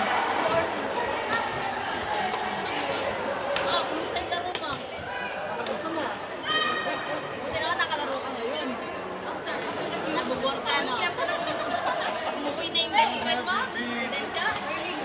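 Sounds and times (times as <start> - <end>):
crowd chatter echoing in hall: 0.0 - 15.0.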